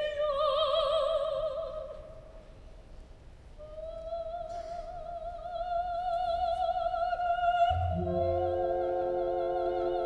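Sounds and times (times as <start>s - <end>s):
soprano singing held notes: 7.6s - 10.0s.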